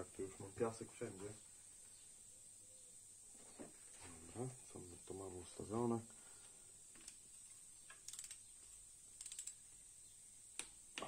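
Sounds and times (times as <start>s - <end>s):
ratcheting torque wrench clicking: 6.9s - 7.2s, 7.9s - 9.6s.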